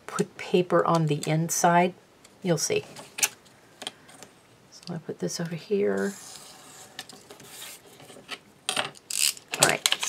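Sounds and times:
metal ruler sliding: 6.0 - 7.8
paper rubbing and shuffling: 6.0 - 8.2.

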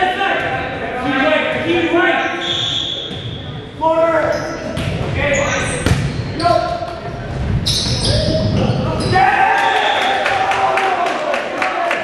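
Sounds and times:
volleyball hits: 5.8 - 6.2
players shouting calls: 8.0 - 12.0.

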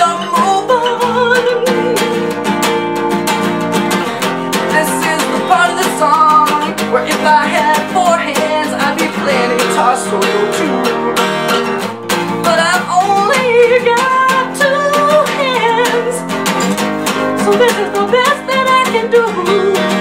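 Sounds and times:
acoustic guitar strumming: 0.0 - 20.0
man singing loudly: 4.6 - 11.8.

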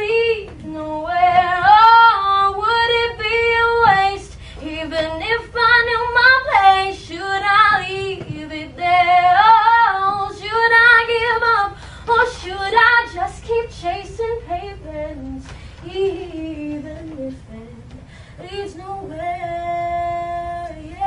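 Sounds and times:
girl singing a cappella: 0.0 - 21.0
girl breathing: 11.7 - 12.1.

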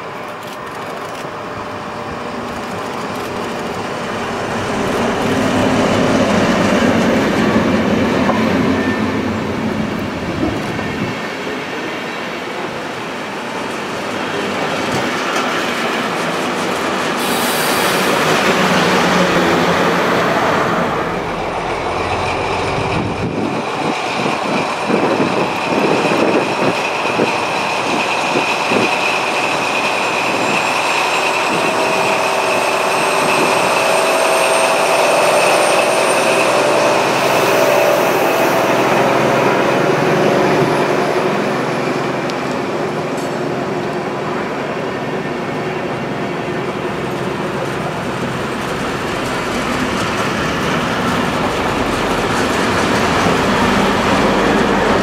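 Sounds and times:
diesel locomotive engine running: 0.0 - 55.0
high-pitched locomotive whine: 0.0 - 55.0
train wheels clattering on rails: 12.5 - 45.2, 46.5 - 55.0.

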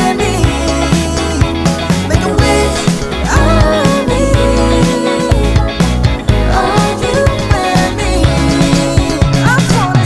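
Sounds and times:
person singing: 0.0 - 10.0
steady drum beat: 0.0 - 10.0.

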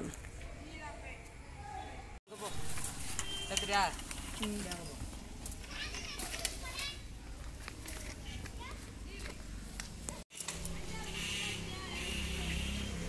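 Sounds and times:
people talking: 3.5 - 5.0, 10.1 - 13.0.

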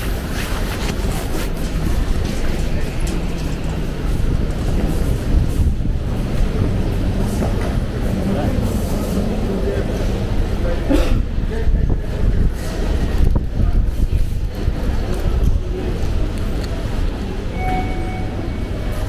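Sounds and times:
steady low rumble: 0.0 - 19.0
indistinct voices: 1.6 - 19.0.

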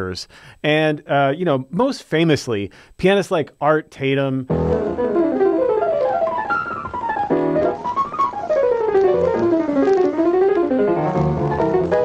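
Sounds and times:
solo jazz piano runs: 4.5 - 12.0.

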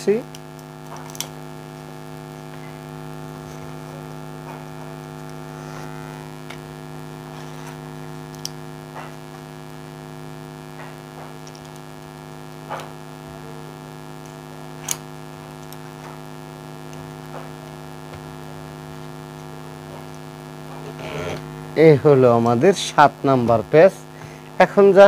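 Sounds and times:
electrical mains hum: 0.0 - 25.0.

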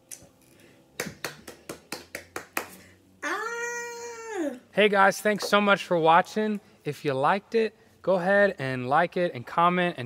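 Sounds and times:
sharp clicks or claps: 1.0 - 2.8.

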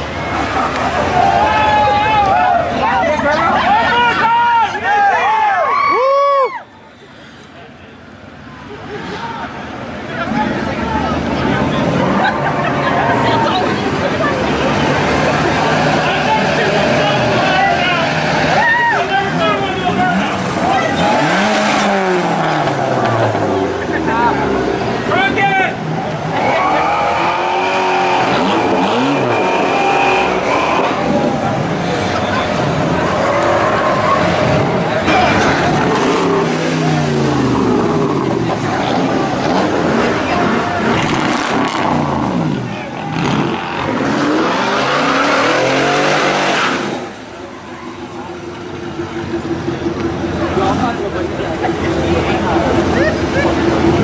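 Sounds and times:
vehicles accelerating and revving: 0.0 - 4.4, 7.0 - 54.0.

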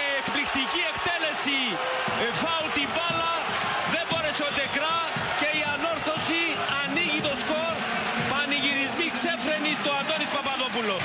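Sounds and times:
men speaking and shouting: 0.0 - 11.0
stadium crowd noise: 0.0 - 11.0.

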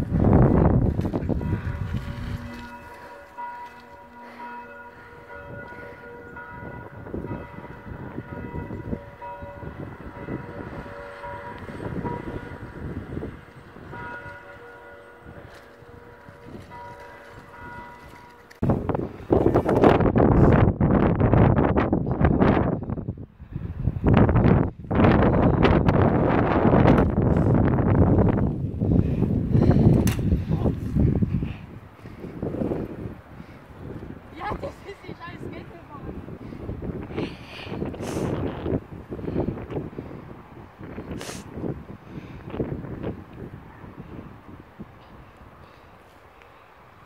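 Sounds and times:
wind buffeting microphone: 0.0 - 46.1
church bells ringing: 1.3 - 18.7.

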